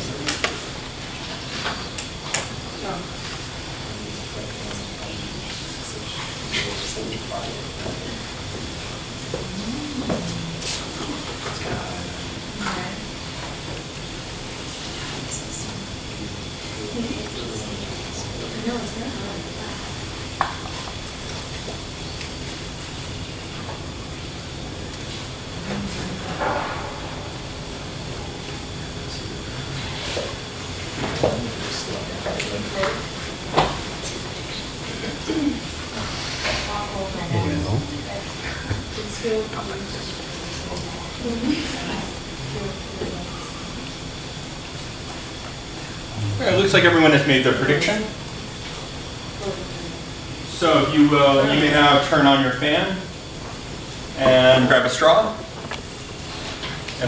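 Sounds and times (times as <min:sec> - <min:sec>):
indistinct chatter: 0:02.7 - 0:13.2, 0:25.5 - 0:44.2, 0:46.1 - 0:48.2.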